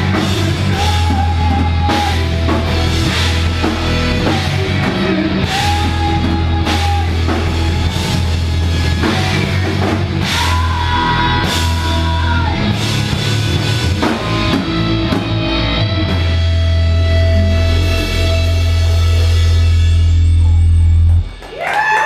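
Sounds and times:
hardcore band playing live: 0:00.0 - 0:22.0.

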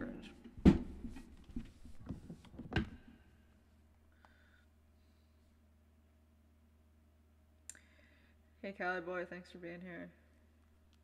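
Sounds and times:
knocks and thuds at a desk: 0:00.6 - 0:03.0.

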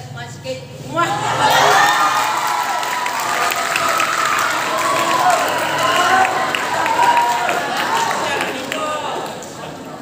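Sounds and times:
crowd cheering and shouting: 0:01.0 - 0:10.0
people clapping: 0:01.4 - 0:10.0.

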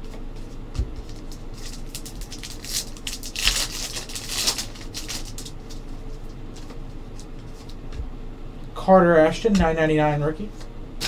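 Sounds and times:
cards rustling and flicking: 0:00.0 - 0:07.8.

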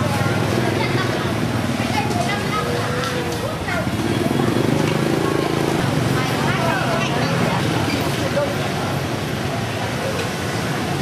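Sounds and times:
motor scooter engine: 0:00.0 - 0:11.0
people talking: 0:00.0 - 0:11.0
traffic engines running: 0:00.0 - 0:11.0.

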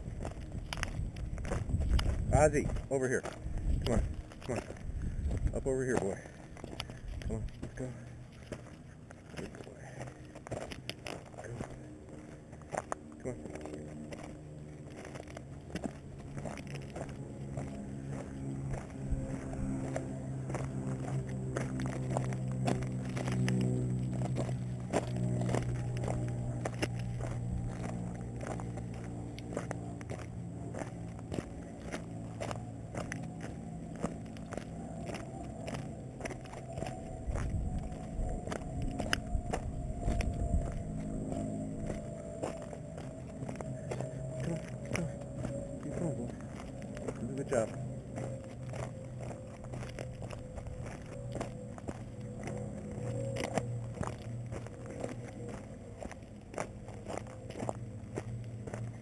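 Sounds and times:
engine drone: 0:00.0 - 0:59.0
footsteps on gravel: 0:00.0 - 0:59.0.

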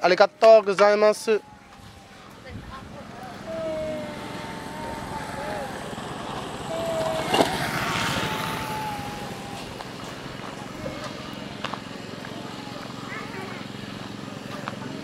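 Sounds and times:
small vehicle engine passing: 0:01.0 - 0:15.0.

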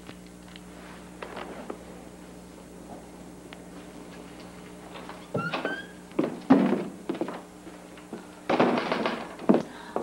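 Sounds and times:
door squeak: 0:05.2 - 0:06.0.

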